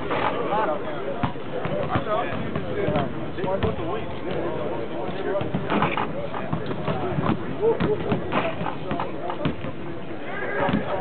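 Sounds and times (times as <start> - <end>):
people talking: 0.0 - 11.0
basketballs bouncing on hardwood: 1.2 - 4.5, 5.1 - 9.8.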